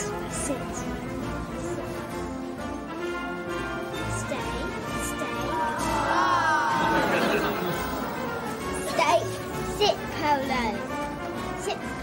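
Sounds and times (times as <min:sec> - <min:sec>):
background music: 0:00.0 - 0:12.0
boy calling commands: 0:04.1 - 0:06.9.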